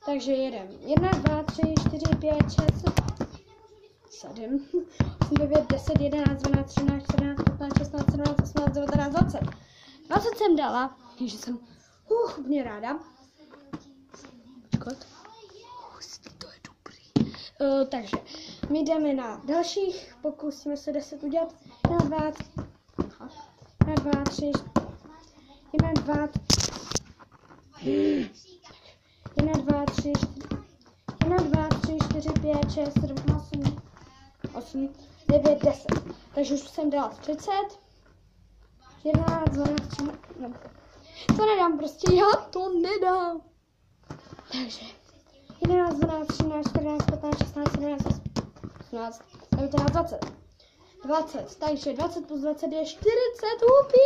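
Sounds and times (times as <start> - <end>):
girl counting in sing-song voice: 0.0 - 13.4, 17.6 - 26.5, 27.8 - 37.8, 51.0 - 54.0
ball bouncing on carpet: 0.9 - 3.4, 4.9 - 9.6, 21.8 - 25.1, 25.7 - 27.0, 29.2 - 36.2, 39.0 - 40.4, 41.3 - 42.4, 45.5 - 50.5.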